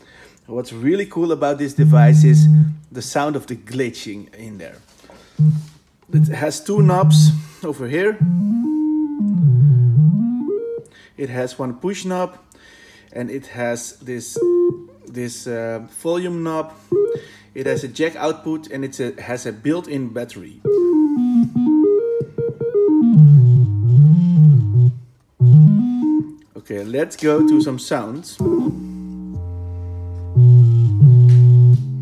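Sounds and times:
stepping electronic synth tone: 1.8 - 2.8, 5.4 - 7.4, 8.2 - 10.8, 14.4 - 15.0, 16.9 - 17.9, 20.7 - 26.4, 27.3 - 32.0.

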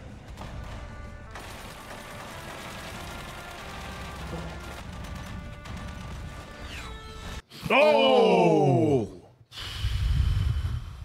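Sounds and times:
film score music: 0.0 - 7.5
dense gunfire: 0.3 - 6.6.

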